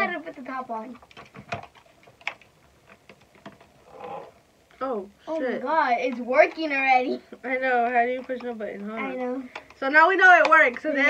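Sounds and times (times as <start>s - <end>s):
hard plastic clicks and knocks: 1.0s - 3.7s.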